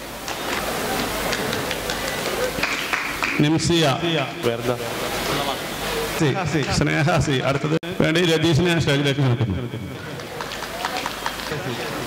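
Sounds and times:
murmured chatter: 0.2s - 3.2s, 4.2s - 6.7s, 9.1s - 12.0s
small audience clapping: 0.2s - 3.6s, 10.0s - 12.0s.

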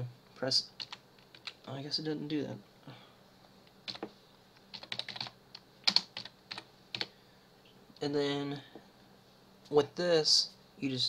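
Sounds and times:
typing on computer keyboard: 0.8s - 1.6s, 4.7s - 7.1s.

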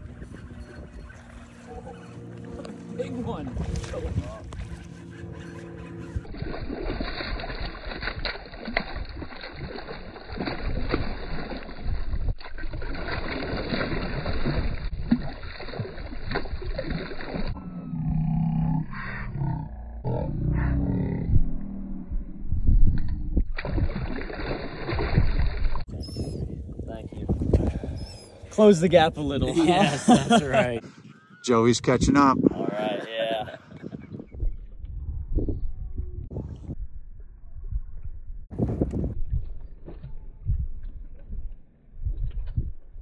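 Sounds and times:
choppy water: 0.0s - 17.6s, 22.1s - 35.2s
wind buffeting microphone: 0.0s - 17.6s, 20.9s - 43.0s
fish splashing at surface: 6.3s - 17.6s, 23.6s - 25.9s.

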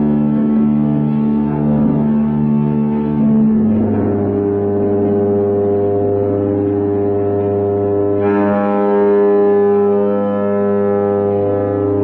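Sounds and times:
constant low hum: 0.0s - 12.0s
droning experimental music: 0.0s - 12.0s.

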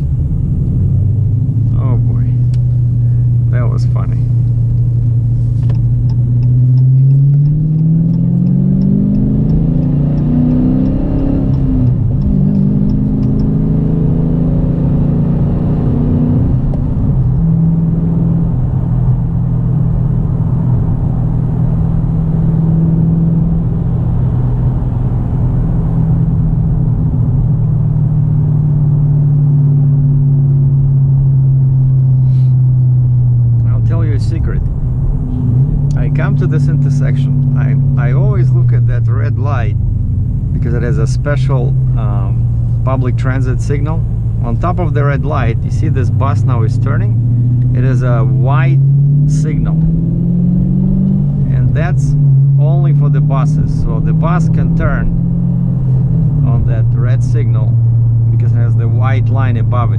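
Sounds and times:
car engine accelerating: 0.0s - 59.9s
road noise: 0.0s - 59.9s
light regular ticking: 4.6s - 13.6s.

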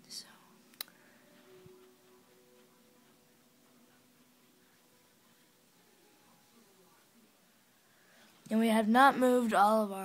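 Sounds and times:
person whispering: 0.0s - 0.6s
faint steady hum: 0.0s - 10.0s.

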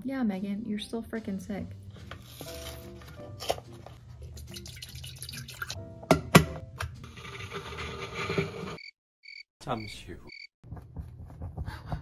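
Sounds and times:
milk pouring into kettle: 4.2s - 5.8s.

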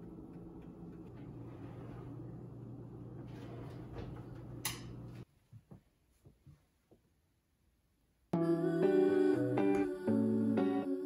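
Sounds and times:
steady low hum: 0.0s - 5.2s.

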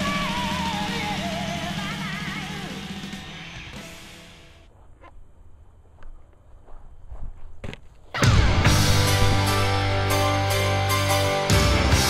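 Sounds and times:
footsteps on grass: 4.7s - 10.6s.

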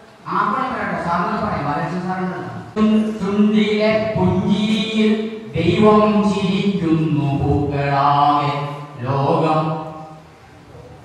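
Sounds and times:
man chanting a poem: 0.2s - 10.2s.

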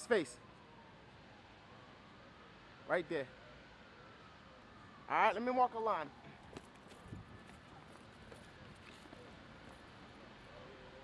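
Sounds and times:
footsteps on a flat roof: 6.4s - 9.8s.

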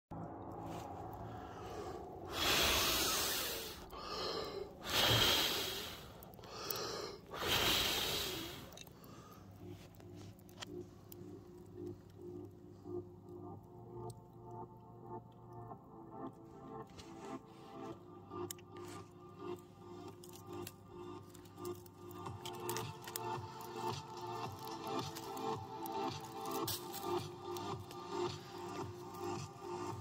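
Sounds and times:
faint music: 0.1s - 30.0s
person blowing on embers: 0.6s - 30.0s.

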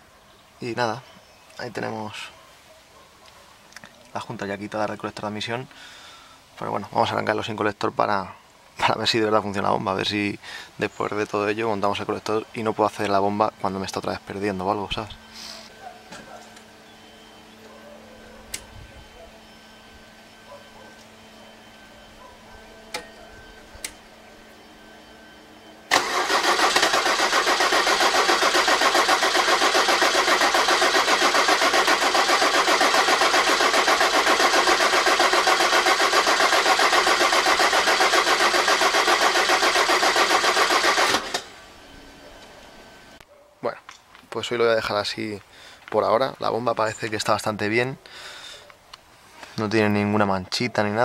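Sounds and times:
diesel engine cranking on starter: 25.9s - 41.7s.

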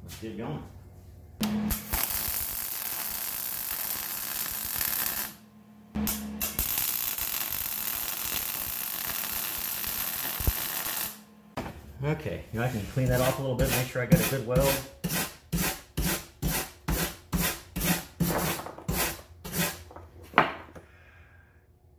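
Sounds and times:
electric arc welder welding: 1.4s - 11.4s.

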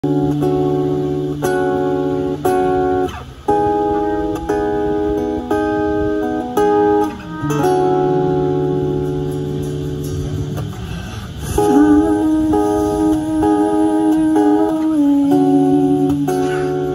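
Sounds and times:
clean guitar chords: 0.0s - 16.9s
held bass notes: 0.0s - 16.9s
sliding melody note: 6.6s - 10.7s.

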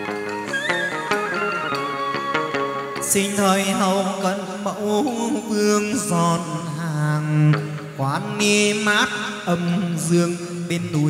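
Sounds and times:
ritual music: 0.0s - 6.8s
ritual singing with vibrato: 0.0s - 11.0s.

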